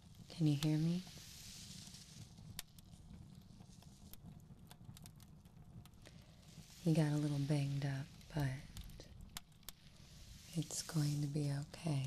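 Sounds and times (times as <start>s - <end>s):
low steady rumble: 0.0s - 12.0s
small crackles and clicks: 0.0s - 12.0s
soft hiss: 0.0s - 12.0s.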